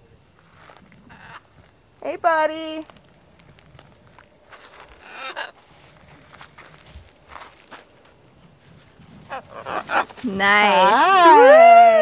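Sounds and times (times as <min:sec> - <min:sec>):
macaw squawk: 0:04.9 - 0:05.6, 0:09.3 - 0:10.2
bird wingbeats: 0:08.4 - 0:11.3.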